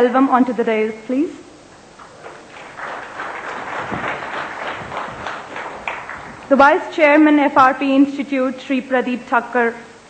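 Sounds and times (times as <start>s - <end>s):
audience applauding: 2.0s - 6.5s.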